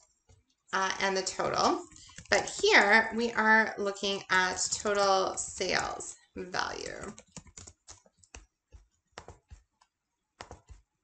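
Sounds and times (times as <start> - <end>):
keyboard typing: 0.8 - 11.0.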